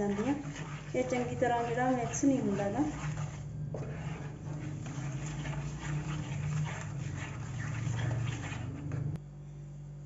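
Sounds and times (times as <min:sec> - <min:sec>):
masher scraping mixture in pan: 0:00.0 - 0:09.2
steady low hum: 0:00.0 - 0:10.0.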